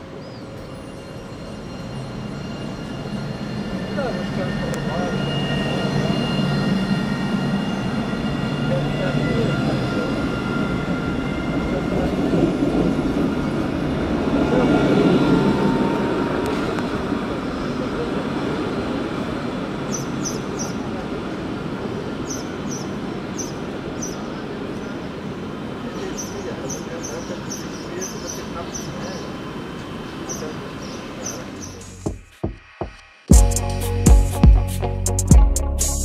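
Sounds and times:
electric tram drive whine: 0:00.5 - 0:19.8.

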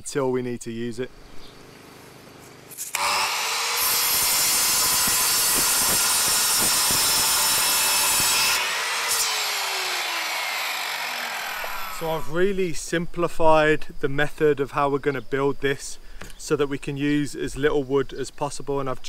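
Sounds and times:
mitre saw cutting wood: 0:02.7 - 0:12.3.

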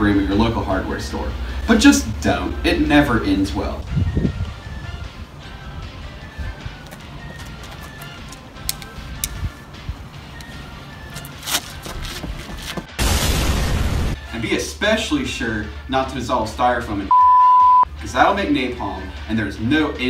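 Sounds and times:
faint background music: 0:00.0 - 0:13.3, 0:14.2 - 0:17.1, 0:17.8 - 0:20.0
loud explosion blast: 0:13.0 - 0:14.2.

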